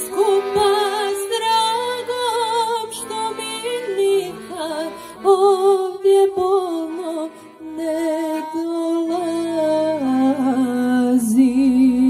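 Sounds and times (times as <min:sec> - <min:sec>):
piano accordion playing slow song: 0:00.0 - 0:12.0.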